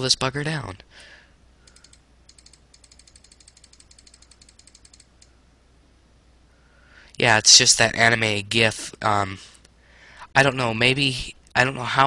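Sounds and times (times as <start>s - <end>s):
rapid computer mouse clicking: 1.6s - 5.4s.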